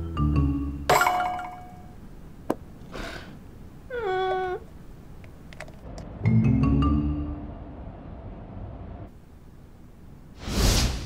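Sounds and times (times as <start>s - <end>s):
brief swish: 10.4s - 11.0s.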